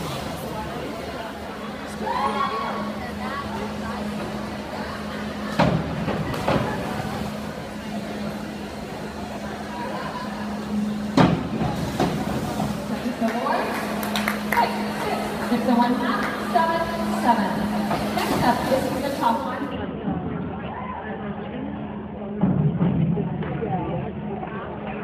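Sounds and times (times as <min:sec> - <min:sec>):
steady low hum: 0:00.0 - 0:20.0
murmur of voices: 0:00.0 - 0:25.0.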